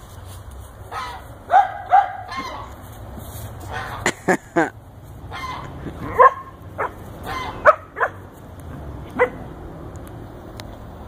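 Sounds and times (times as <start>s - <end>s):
dog barking: 0.9s - 2.6s, 6.1s - 8.3s, 9.1s - 9.4s.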